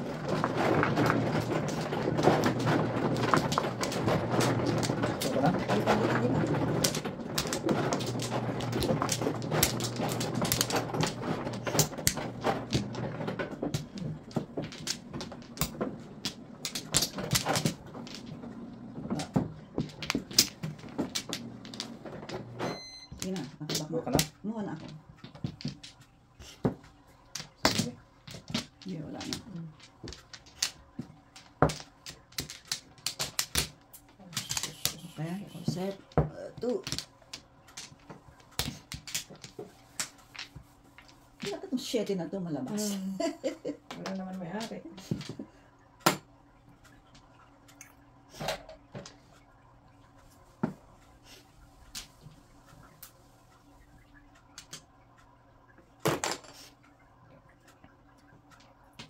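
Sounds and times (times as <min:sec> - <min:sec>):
mahjong tiles clacking: 0:00.0 - 0:42.1, 0:42.7 - 0:47.9, 0:51.8 - 0:54.9.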